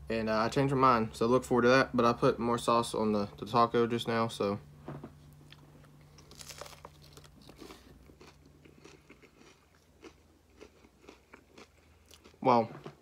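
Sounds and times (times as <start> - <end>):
crunching taco shell: 5.5 - 13.0.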